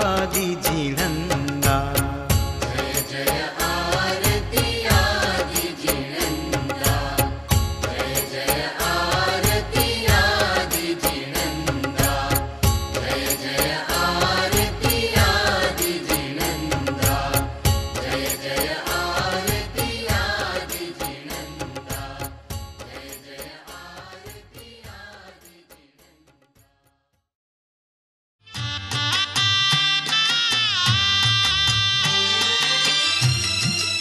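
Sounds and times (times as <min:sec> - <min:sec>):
steady drum beat: 0:00.0 - 0:23.1
devotional song melody: 0:00.0 - 0:25.7.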